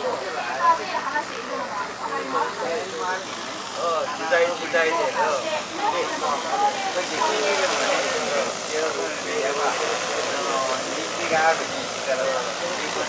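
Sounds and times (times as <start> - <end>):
drone rotor whir: 0.0 - 13.0
people talking: 0.0 - 13.0.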